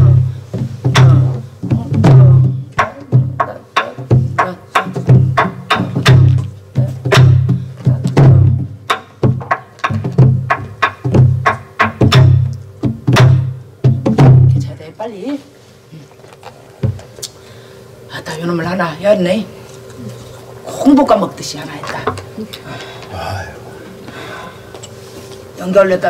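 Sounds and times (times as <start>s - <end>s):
barrel drum strokes: 0.0s - 14.7s.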